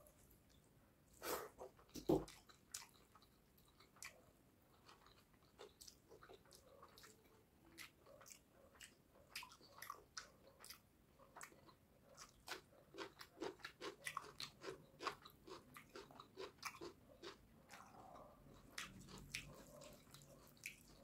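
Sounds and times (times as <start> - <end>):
wet chewing: 1.8 - 21.0.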